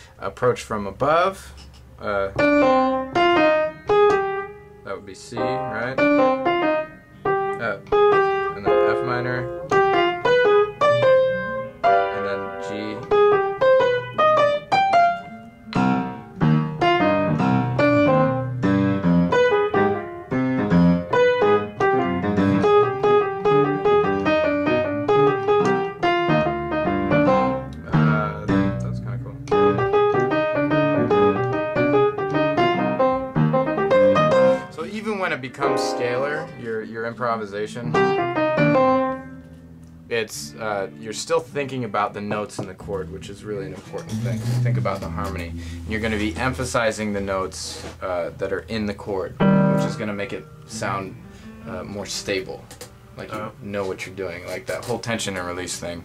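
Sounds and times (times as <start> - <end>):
piano playing: 2.2 - 53.7.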